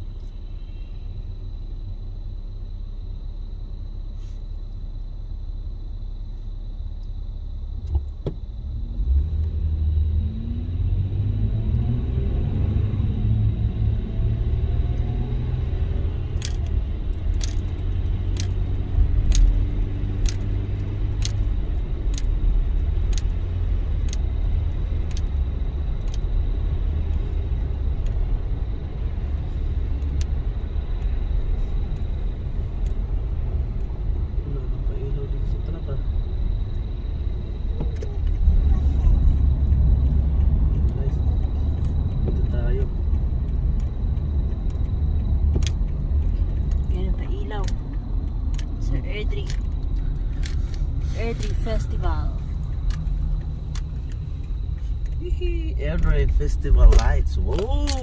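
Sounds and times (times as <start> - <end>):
car engine accelerating: 6.9 - 58.0
turn signal ticking: 10.9 - 58.0.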